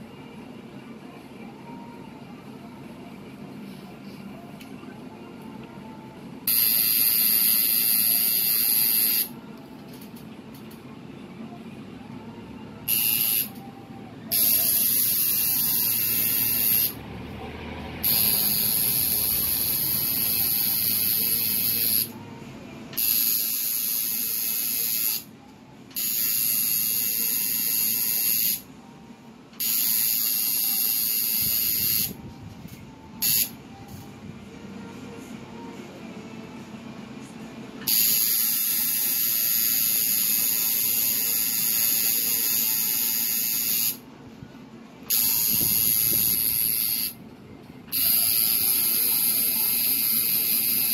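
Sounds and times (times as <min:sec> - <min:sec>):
tattoo machine buzzing: 0:06.5 - 0:09.4, 0:12.9 - 0:13.6, 0:14.3 - 0:17.0, 0:18.0 - 0:22.2, 0:23.0 - 0:25.3, 0:26.0 - 0:28.7, 0:29.6 - 0:32.2, 0:33.2 - 0:33.6, 0:37.8 - 0:44.0, 0:45.1 - 0:47.2, 0:47.9 - 0:50.9.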